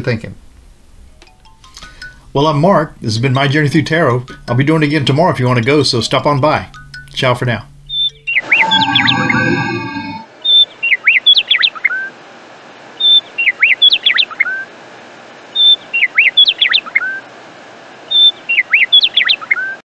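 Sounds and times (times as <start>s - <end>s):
whistled bird chirps: 7.9s - 12.1s, 13.0s - 14.7s, 15.6s - 17.2s, 18.1s - 19.8s
low growl with ringing chime: 8.4s - 10.3s.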